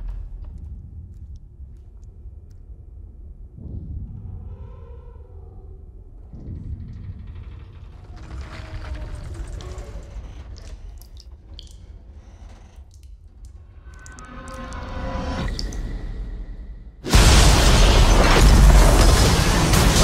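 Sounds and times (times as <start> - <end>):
water dripping: 0.0 - 3.2, 10.1 - 16.0
low rumble: 0.0 - 20.0
groaning creaking tones: 3.6 - 15.4.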